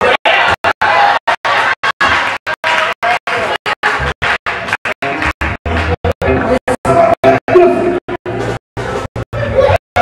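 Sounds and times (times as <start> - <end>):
voices in a hall: 0.2 - 10.0.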